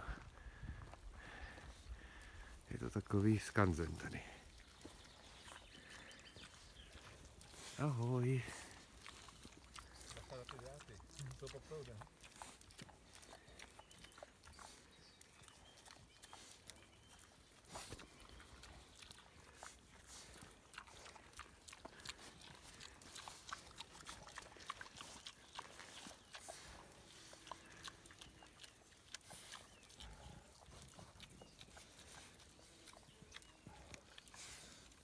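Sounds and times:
pigs rooting and chewing: 0.0 - 35.0.

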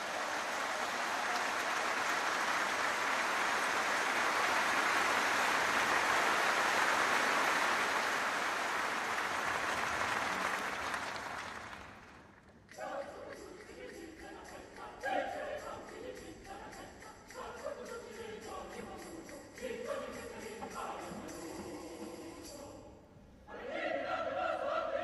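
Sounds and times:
large audience applauding: 0.0 - 12.4.

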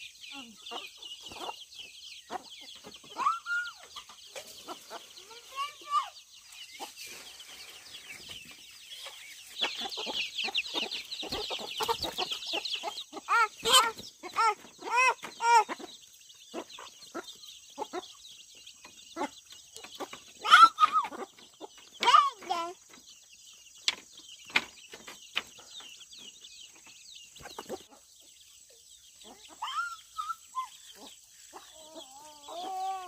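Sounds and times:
chicks peeping: 0.0 - 33.0
hens clucking: 0.0 - 33.0.

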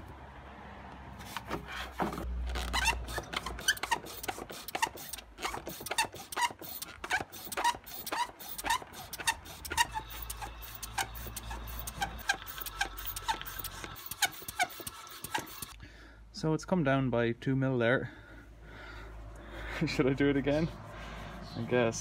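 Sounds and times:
hand pump strokes: 1.2 - 15.8.

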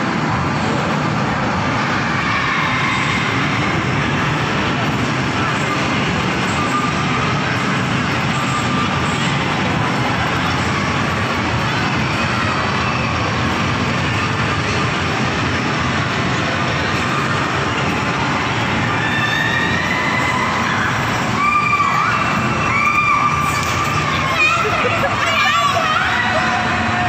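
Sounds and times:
crowd: 0.0 - 27.0
rides rumbling: 0.0 - 27.0.

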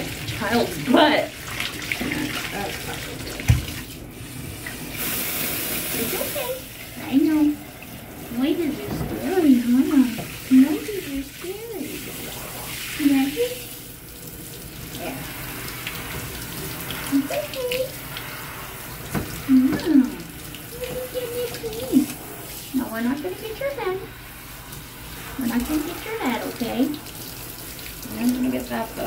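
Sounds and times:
shower head spraying water: 0.0 - 29.0
person's voice: 8.3 - 13.6, 17.1 - 18.0, 19.5 - 22.2, 25.4 - 27.0, 28.0 - 29.0.

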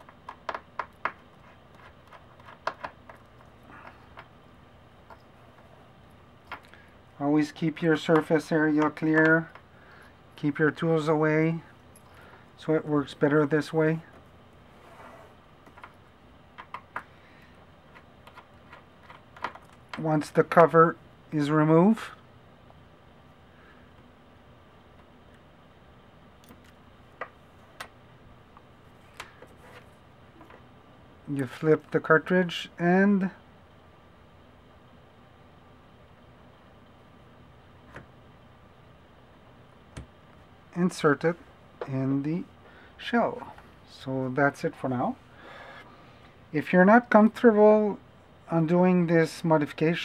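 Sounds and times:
low steady hum: 0.0 - 50.0.

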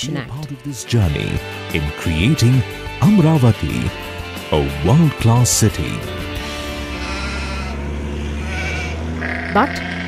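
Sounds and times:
sheep bleating: 6.7 - 10.0.

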